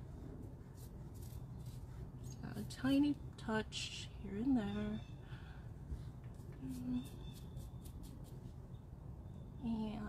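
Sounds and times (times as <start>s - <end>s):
paintbrush strokes: 0.0s - 2.9s, 6.3s - 8.6s
low room hum: 0.0s - 10.0s.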